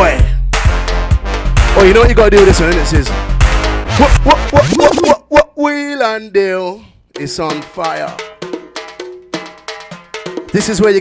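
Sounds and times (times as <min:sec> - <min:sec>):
house music track: 0:03.8 - 0:05.3
sharp percussion hits: 0:07.2 - 0:11.0.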